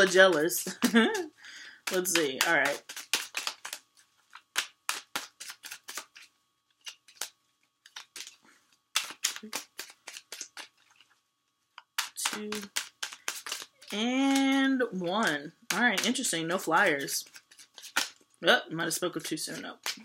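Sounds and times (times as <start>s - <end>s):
cards shuffled by hand: 0.0s - 18.3s, 19.2s - 20.0s.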